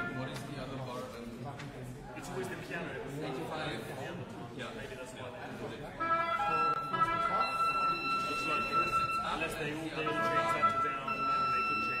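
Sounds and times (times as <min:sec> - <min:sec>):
murmur of voices: 0:00.0 - 0:12.0
sustained instrument notes: 0:06.0 - 0:09.1.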